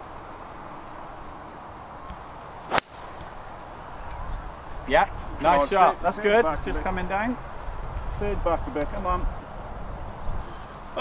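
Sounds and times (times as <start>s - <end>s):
golf club striking ball: 2.7s - 3.4s.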